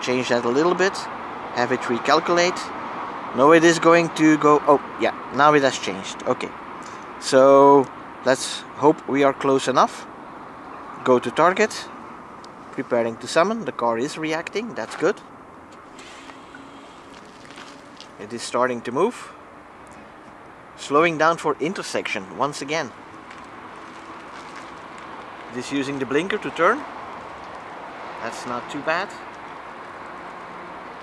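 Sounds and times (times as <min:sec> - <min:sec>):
car low hum: 0:00.0 - 0:31.0
outdoor background noise: 0:00.0 - 0:31.0
electric car faint hum: 0:15.3 - 0:18.2.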